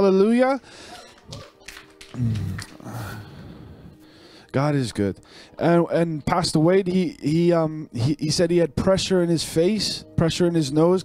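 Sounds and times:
man breathing: 0.6s - 1.1s, 2.8s - 4.5s, 5.2s - 5.6s.

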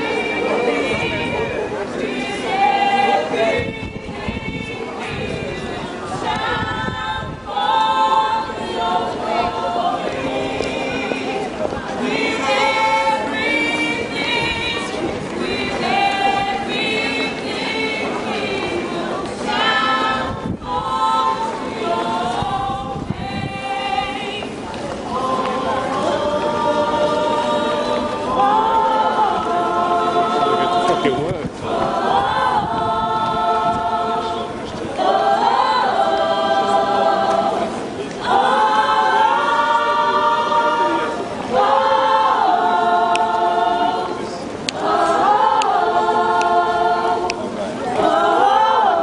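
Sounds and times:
gospel choir singing a cappella: 0.0s - 49.0s.

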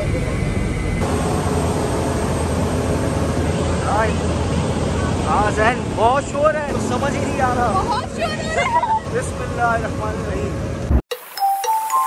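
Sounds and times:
aircraft and ground equipment running: 0.0s - 11.0s.

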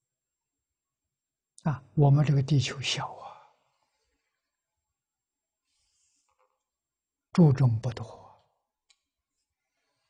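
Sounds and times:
man speaking: 1.6s - 3.4s, 7.4s - 8.3s.

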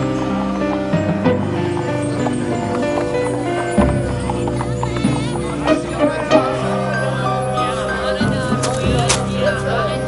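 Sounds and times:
hooves clip-clopping on dirt: 0.0s - 6.4s
background music: 0.0s - 10.0s.

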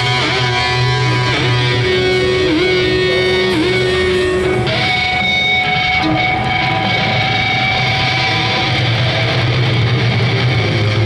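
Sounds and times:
electric guitar feedback whine: 0.0s - 11.0s.

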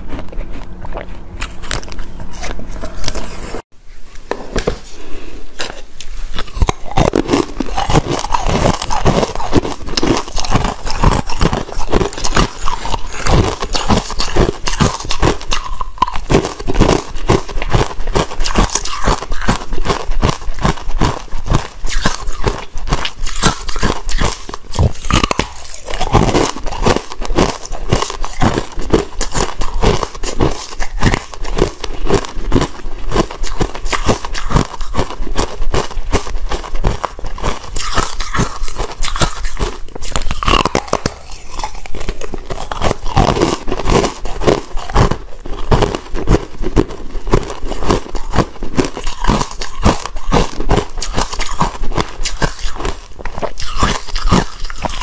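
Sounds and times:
crunching and chewing ice: 0.0s - 3.3s, 6.4s - 55.0s.

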